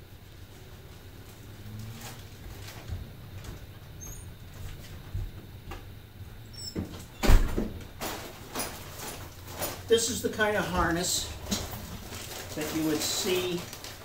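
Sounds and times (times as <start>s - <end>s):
low steady hum: 0.0s - 14.0s.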